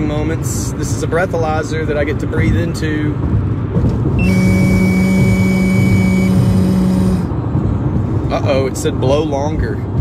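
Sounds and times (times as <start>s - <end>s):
steady low hum: 3.2s - 8.5s
high electronic tone: 4.2s - 7.3s.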